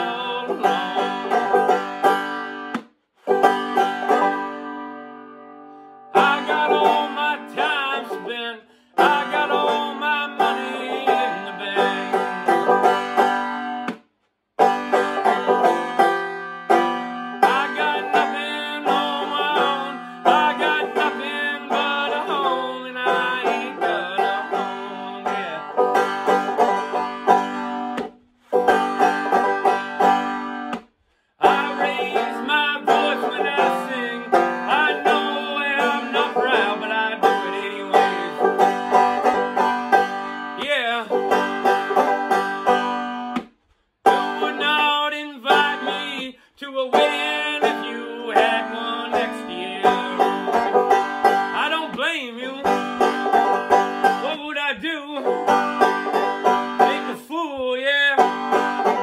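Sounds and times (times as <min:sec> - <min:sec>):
banjo playing: 0:00.0 - 0:14.0, 0:14.6 - 0:30.8, 0:31.4 - 0:43.4, 0:44.0 - 0:59.0.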